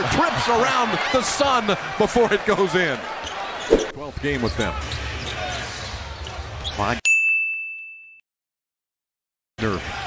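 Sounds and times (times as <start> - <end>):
arena game broadcast sound: 3.7 - 4.3
bell-like ding: 7.1 - 8.2.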